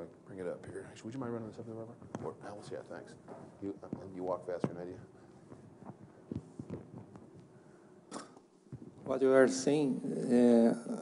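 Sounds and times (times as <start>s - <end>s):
microphone handling knocks and rustles: 1.9s - 2.6s, 3.2s - 7.5s, 8.7s - 9.1s.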